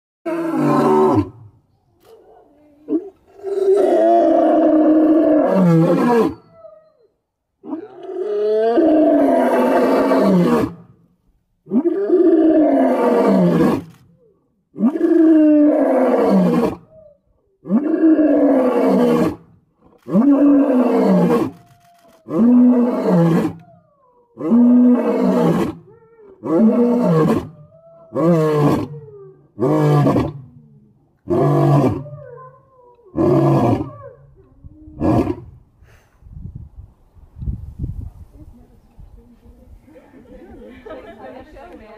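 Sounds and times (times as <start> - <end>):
lion roaring: 24.4 - 30.6, 31.2 - 34.3.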